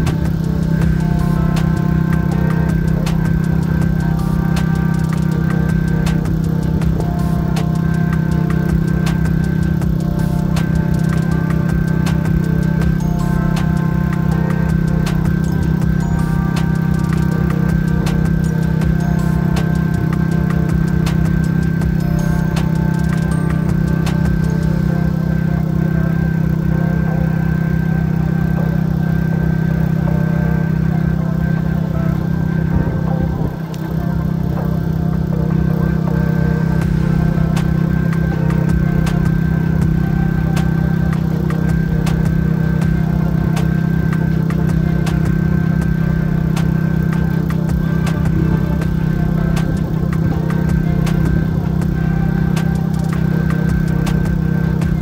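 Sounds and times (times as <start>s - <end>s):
snowblower engine running: 0.0s - 55.0s.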